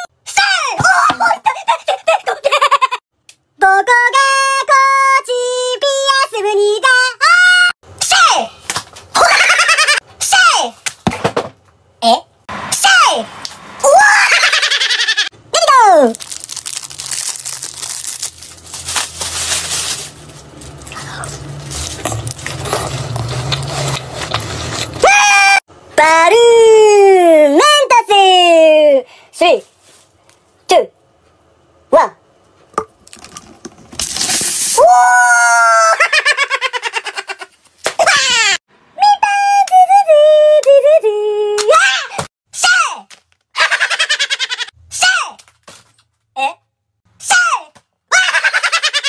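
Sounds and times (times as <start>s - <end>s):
rapid laughter: 14.2s - 15.3s
person screaming: 34.8s - 36.0s.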